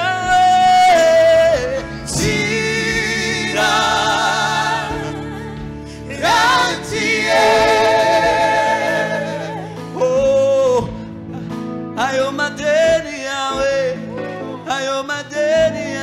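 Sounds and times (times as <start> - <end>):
band accompaniment: 0.0 - 16.0
gospel singers: 0.0 - 16.0.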